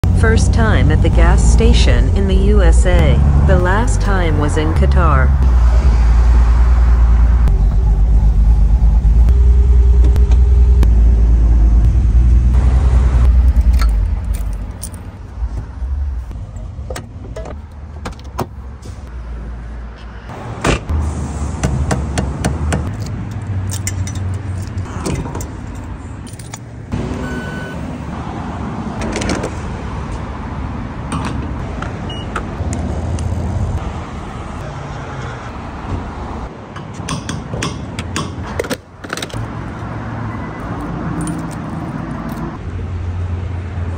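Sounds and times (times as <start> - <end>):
car engine running low rumble: 0.0 - 28.2
low vehicle hum: 0.0 - 36.7
keys jangling: 13.4 - 15.2, 22.9 - 26.7, 40.7 - 42.6.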